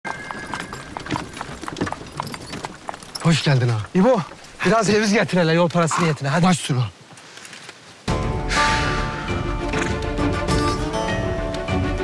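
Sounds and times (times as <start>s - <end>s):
horse hooves clip-clopping on stone: 0.0s - 6.0s.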